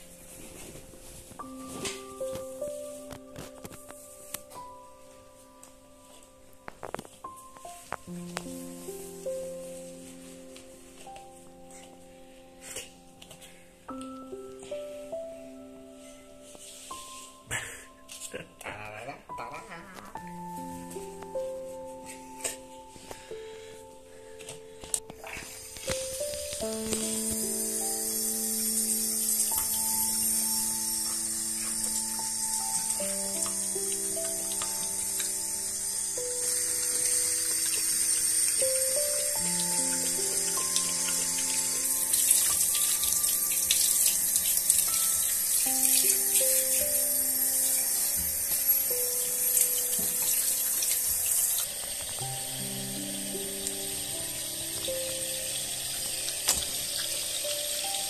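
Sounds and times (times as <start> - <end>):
slow background music: 0.0 - 58.0
water spraying from shower head: 25.2 - 58.0.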